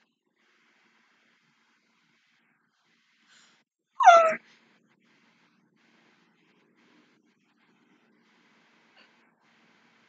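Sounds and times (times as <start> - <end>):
woman squealing: 4.0 - 4.4.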